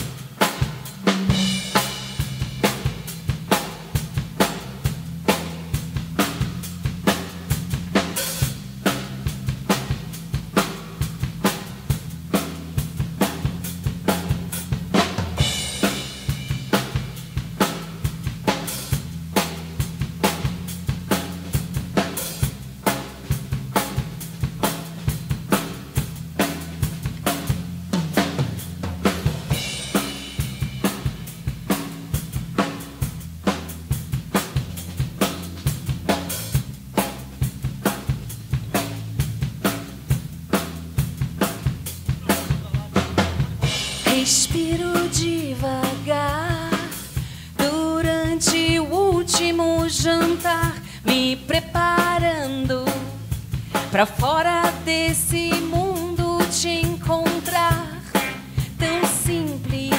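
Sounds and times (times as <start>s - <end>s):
electric bass line: 0.0s - 50.6s, 55.3s - 59.9s
drum kit beat: 0.0s - 59.9s.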